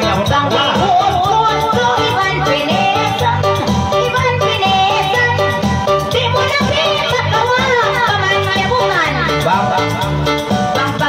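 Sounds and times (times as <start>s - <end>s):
woman singing into microphone: 0.0s - 9.4s
amplified backing music: 0.0s - 11.0s.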